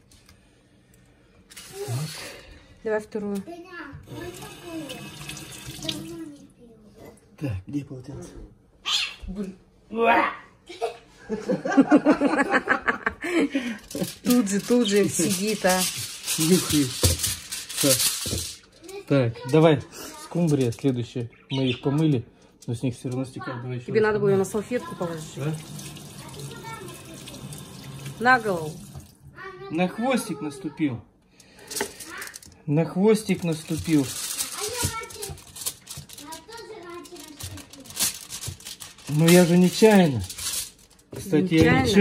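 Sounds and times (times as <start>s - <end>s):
aluminium foil crinkling: 1.5s - 2.4s, 13.6s - 23.2s, 31.5s - 42.0s
child's voice: 3.4s - 5.1s, 5.8s - 7.3s, 18.8s - 20.4s, 26.2s - 27.5s, 29.3s - 31.0s, 32.0s - 32.4s, 34.3s - 38.1s.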